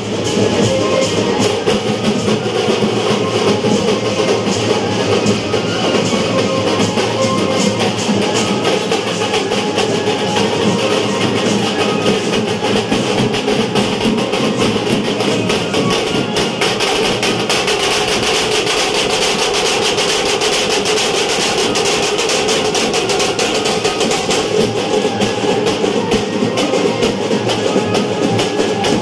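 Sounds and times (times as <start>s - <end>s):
frame drums beating fast: 0.0s - 29.0s.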